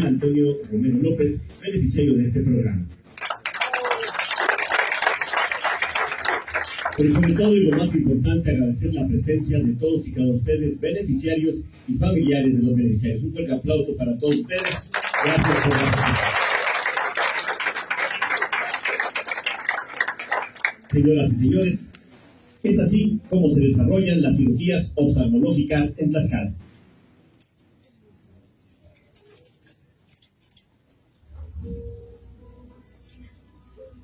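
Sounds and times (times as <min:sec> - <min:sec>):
audience applauding: 0:03.2 - 0:07.9, 0:14.3 - 0:21.0.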